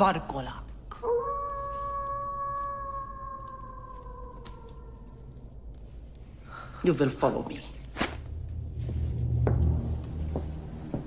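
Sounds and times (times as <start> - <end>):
dog howling: 0.9 - 5.9.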